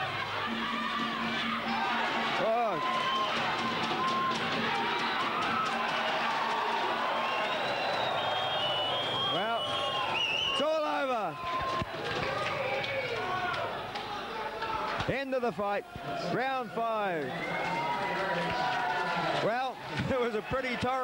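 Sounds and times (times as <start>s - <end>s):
crowd cheering and shouting: 0.0s - 21.0s.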